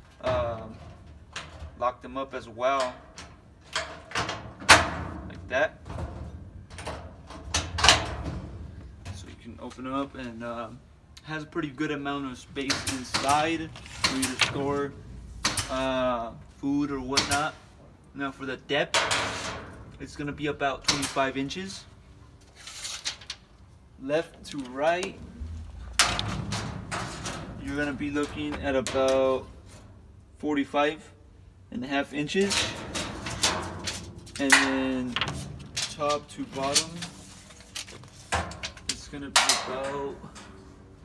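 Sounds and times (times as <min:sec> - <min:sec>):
low rumble of handling: 0:23.2 - 0:30.4
metal cabinet door opening: 0:25.0 - 0:29.8.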